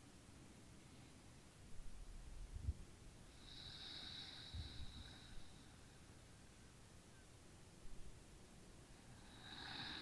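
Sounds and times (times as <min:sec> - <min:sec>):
faint breathing into microphone: 0:03.3 - 0:06.5, 0:08.9 - 0:10.0.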